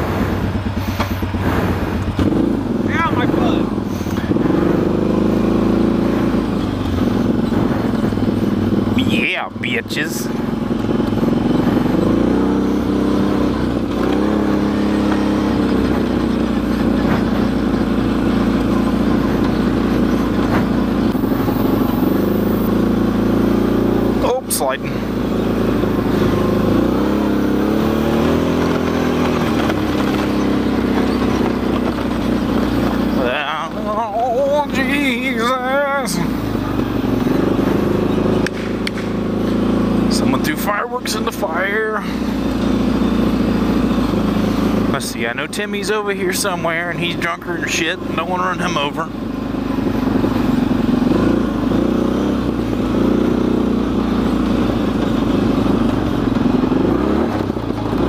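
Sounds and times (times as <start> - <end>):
vehicle engine revving in mud: 0.0 - 58.0.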